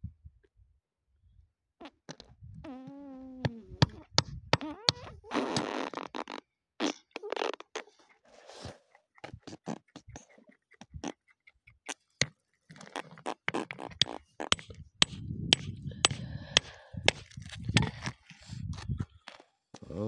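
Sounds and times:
rocks clicking and scraping: 7.0s - 19.5s.

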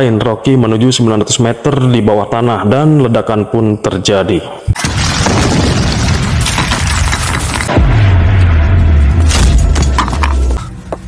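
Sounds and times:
blast rumble and falling debris: 4.8s - 10.3s
dramatic score: 7.6s - 11.0s
deep low drone: 7.7s - 11.0s.

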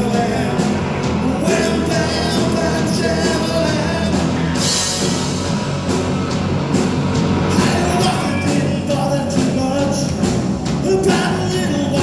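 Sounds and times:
bass guitar: 0.0s - 12.0s
drum and cymbal hits: 0.0s - 12.0s
electric guitars: 0.0s - 12.0s.

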